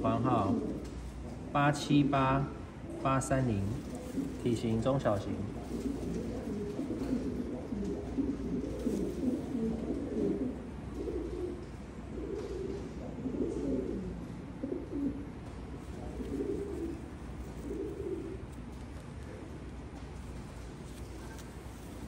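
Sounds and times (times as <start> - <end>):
pigeons cooing: 0.0 - 22.0.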